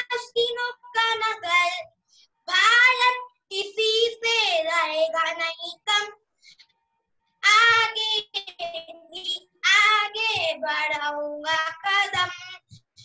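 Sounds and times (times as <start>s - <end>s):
child singing unaccompanied: 0.0s - 6.2s, 7.4s - 13.0s.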